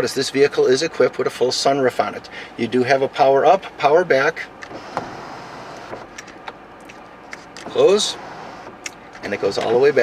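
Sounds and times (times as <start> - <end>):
sunroof motor whirring: 4.6 - 6.2, 7.3 - 10.0.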